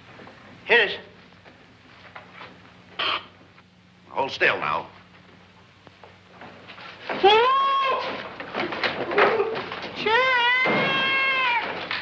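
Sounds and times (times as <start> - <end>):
man's high-pitched yell: 7.2 - 8.2, 10.0 - 11.7
wooden crates clattering: 8.0 - 12.0.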